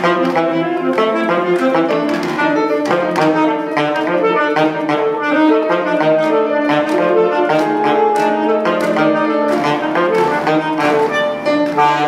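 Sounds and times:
alto saxophone: 0.0s - 12.0s
grand piano: 0.0s - 12.0s.

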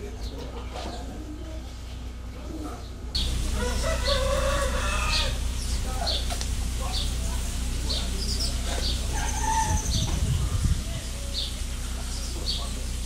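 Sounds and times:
low background hum: 0.0s - 13.0s
small birds chirping: 2.7s - 13.0s
rooster crowing: 3.2s - 5.6s, 9.1s - 10.0s.

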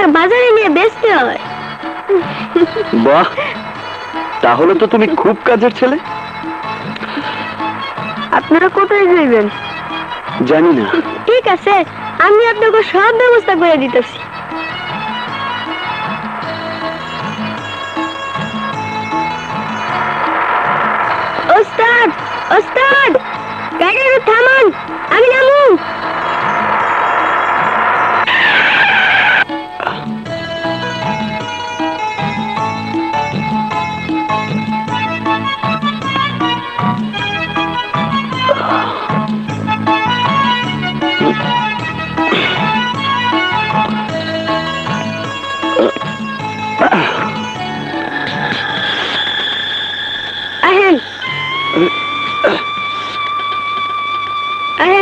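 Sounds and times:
car road noise: 0.0s - 30.2s, 33.8s - 54.8s
tyres screeching under braking: 6.0s - 30.1s, 34.4s - 54.9s
held electronic tones: 15.0s - 29.4s, 44.7s - 53.7s.

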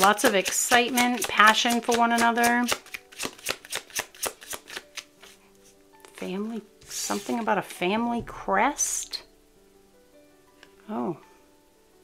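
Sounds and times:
faint soft background music: 0.0s - 12.0s
cards shuffling: 0.1s - 5.4s, 6.8s - 7.8s.

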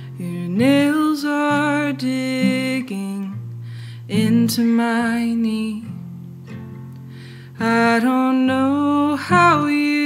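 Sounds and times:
woman singing: 0.0s - 6.1s, 7.5s - 10.0s
acoustic guitar: 0.0s - 10.0s.

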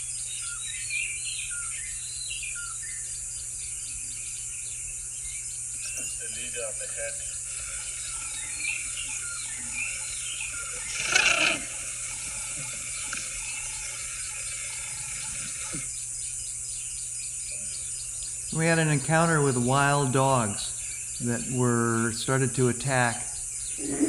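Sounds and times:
faint bird chirps: 0.0s - 22.2s
high insect drone: 0.0s - 24.0s.

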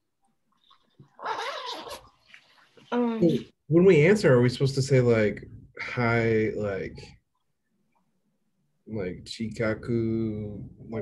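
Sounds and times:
pet animal crying: 1.2s - 2.1s.

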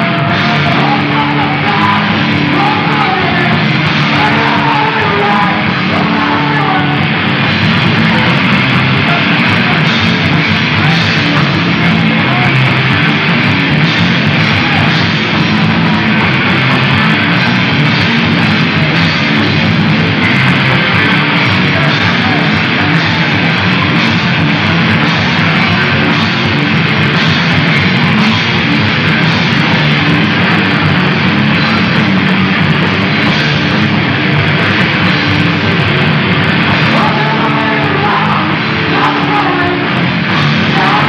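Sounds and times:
bass guitar: 0.0s - 41.0s
distorted electric guitar: 0.0s - 41.0s
pounding drum kit: 0.0s - 41.0s.

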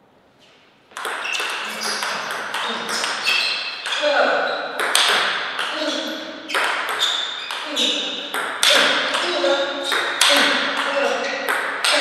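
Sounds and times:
table tennis rally clicks: 1.0s - 4.0s, 4.8s - 5.8s.

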